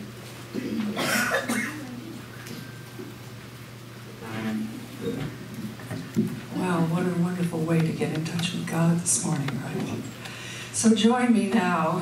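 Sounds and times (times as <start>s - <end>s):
person coughing: 0.9s - 2.0s.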